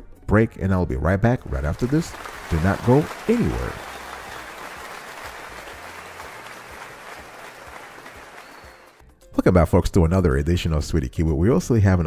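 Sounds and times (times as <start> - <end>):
audience applause: 1.7 - 9.0.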